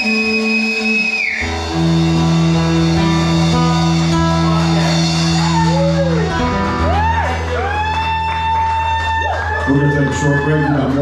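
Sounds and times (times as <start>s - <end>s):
rock band holding a chord: 0.0s - 9.6s.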